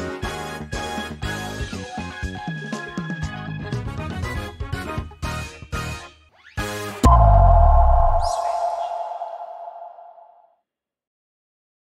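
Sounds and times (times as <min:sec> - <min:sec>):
high swish: 0:07.0 - 0:10.2
low boom: 0:07.0 - 0:10.2
held electronic tone: 0:07.0 - 0:10.3.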